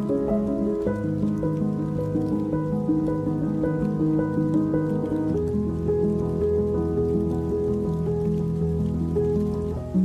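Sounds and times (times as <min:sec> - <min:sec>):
rain pattering: 0:00.0 - 0:10.0
soft slow music: 0:00.0 - 0:10.0.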